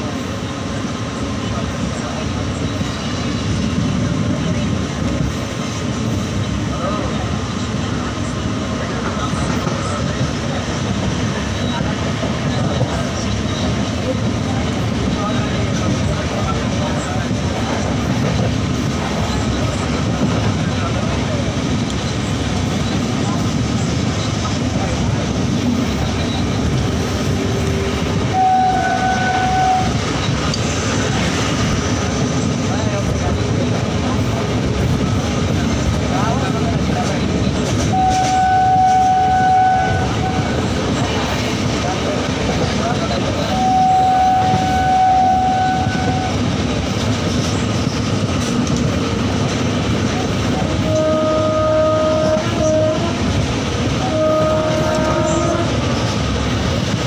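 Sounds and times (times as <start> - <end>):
train wheels rumbling: 0.0 - 57.0
train horn: 27.4 - 30.0, 37.8 - 40.8, 43.4 - 46.5, 50.6 - 55.9.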